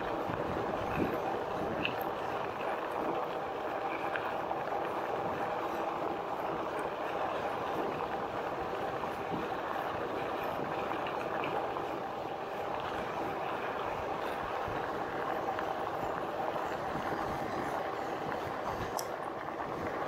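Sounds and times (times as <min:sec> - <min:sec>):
faint electric drive whine: 0:00.0 - 0:20.0
tyres rolling on gritty dirt: 0:00.0 - 0:20.0.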